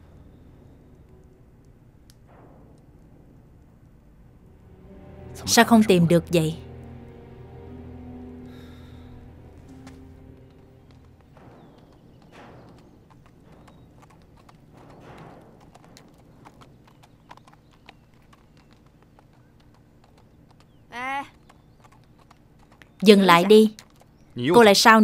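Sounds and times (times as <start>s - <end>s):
hooves clip-clopping on dirt: 9.5s - 24.9s.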